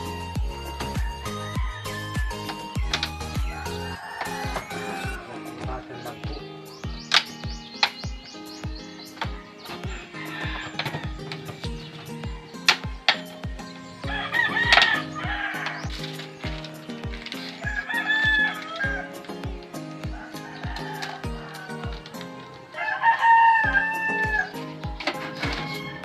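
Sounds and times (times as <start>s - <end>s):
music with steady beat: 0.0s - 26.0s
rooster crowing: 0.8s - 8.2s, 9.3s - 13.2s, 13.9s - 26.0s.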